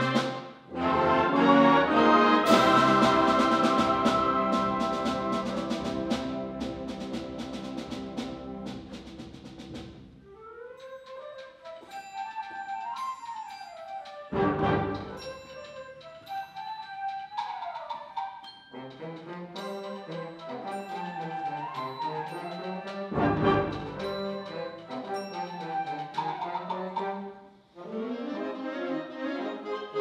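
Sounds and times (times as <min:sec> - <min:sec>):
concert band playing a march: 0:00.0 - 0:10.0, 0:14.3 - 0:15.6, 0:18.8 - 0:27.1
percussion strokes: 0:00.0 - 0:27.4.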